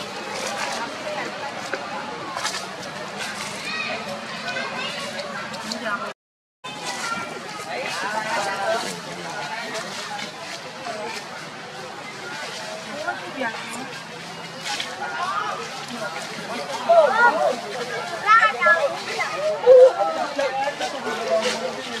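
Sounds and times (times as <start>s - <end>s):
background chatter of voices: 0.0s - 22.0s
voice-like calls bending: 18.2s - 20.2s.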